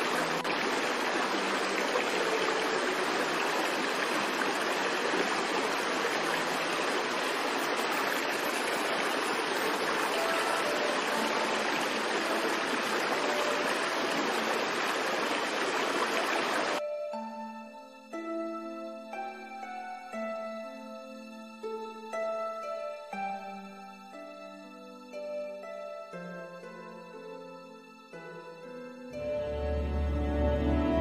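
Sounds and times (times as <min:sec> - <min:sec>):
rushing river and waterfalls: 0:00.0 - 0:31.0.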